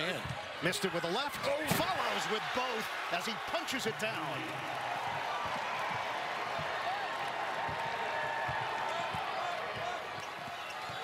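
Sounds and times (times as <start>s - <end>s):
arena crowd cheering: 0.0s - 11.0s.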